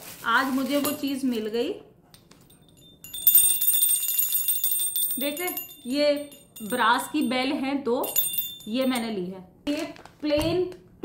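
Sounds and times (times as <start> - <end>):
small brass bells ringing: 2.5 - 9.1.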